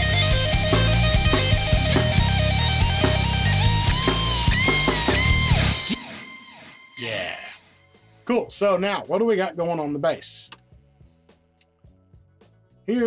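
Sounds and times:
heavy low backing: 0.0 - 5.8
distorted electric guitar lead: 0.0 - 7.8.

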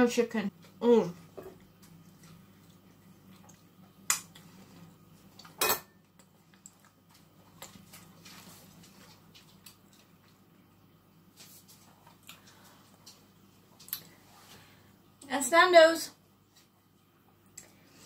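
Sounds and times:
kitchenware clatter: 5.6 - 6.0
kitchenware clinking on a counter: 5.6 - 6.0.

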